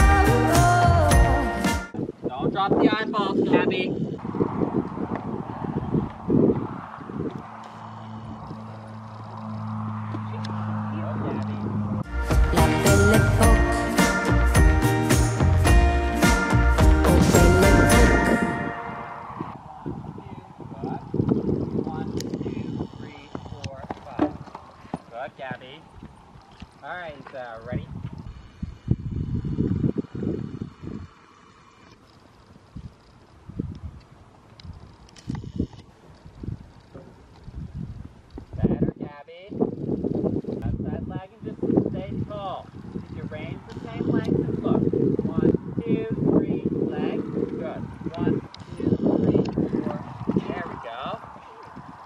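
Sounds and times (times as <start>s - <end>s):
wind buffeting microphone: 1.9s - 13.4s, 15.4s - 52.0s.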